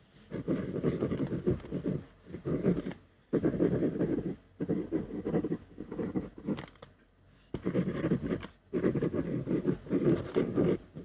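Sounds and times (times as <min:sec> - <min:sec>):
ballpoint pen writing on paper: 0:00.3 - 0:06.8, 0:07.4 - 0:11.0.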